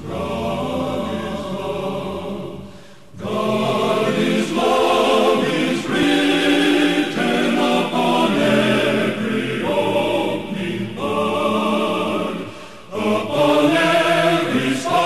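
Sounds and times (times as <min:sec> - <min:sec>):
male vocal quartet singing a hymn: 0:00.0 - 0:15.0.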